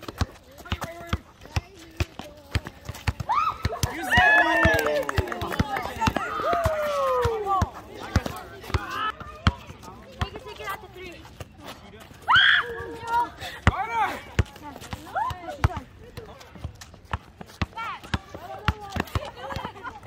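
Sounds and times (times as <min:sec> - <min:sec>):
players shouting: 0:03.2 - 0:10.6.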